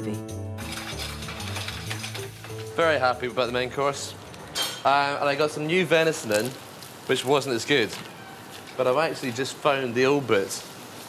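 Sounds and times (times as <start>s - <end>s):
frying pan flame crackling: 0.6s - 11.0s.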